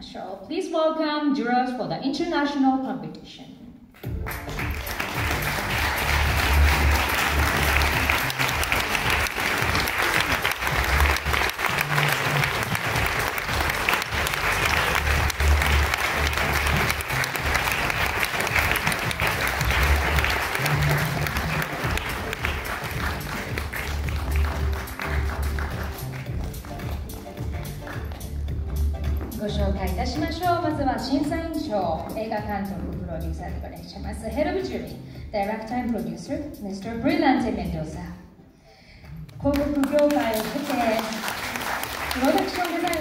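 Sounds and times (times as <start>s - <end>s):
music with pulsing bass line: 4.1s - 31.5s
audience applauding: 4.2s - 28.3s, 39.5s - 43.0s.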